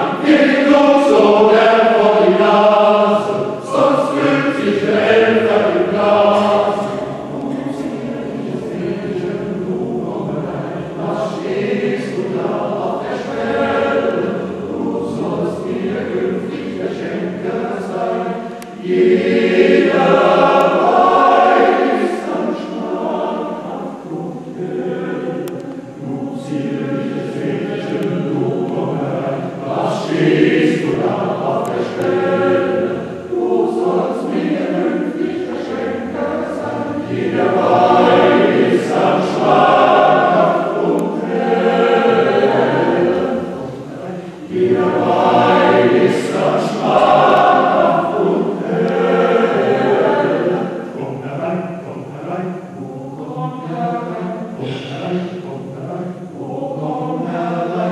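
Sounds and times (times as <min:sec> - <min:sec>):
men's choir singing: 0:00.0 - 0:57.9.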